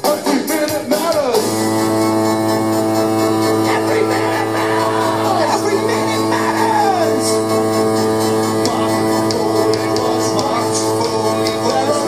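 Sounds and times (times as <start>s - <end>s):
rock band playing: 0.0s - 12.0s.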